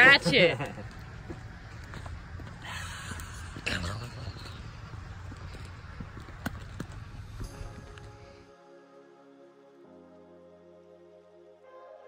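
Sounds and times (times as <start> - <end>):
background music: 7.4 - 12.0.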